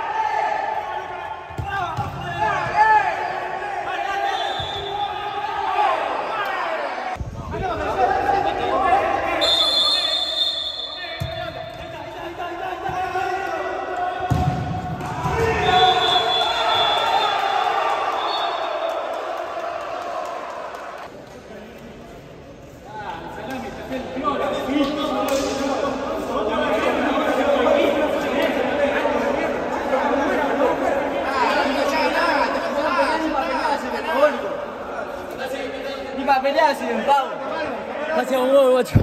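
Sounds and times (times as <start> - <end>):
shouting voices echoing: 0.0 - 20.5.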